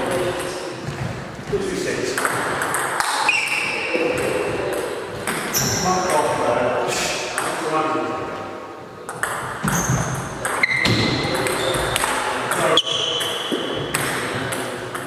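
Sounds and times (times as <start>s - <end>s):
high-pitched shoe squeaks: 3.1s - 3.9s, 5.5s - 5.8s, 9.6s - 11.9s, 12.7s - 13.8s.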